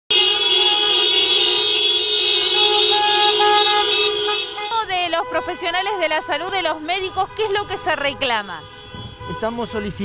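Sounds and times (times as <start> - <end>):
short horn toots: 0.1 - 5.4
car horns blaring: 0.1 - 10.0.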